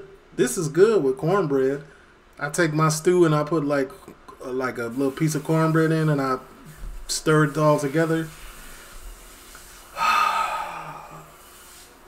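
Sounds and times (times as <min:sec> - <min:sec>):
man sighing: 0:10.0 - 0:11.4.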